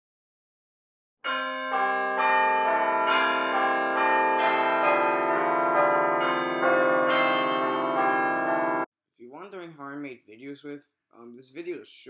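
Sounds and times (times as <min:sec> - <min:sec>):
bells ringing: 0:01.2 - 0:08.9.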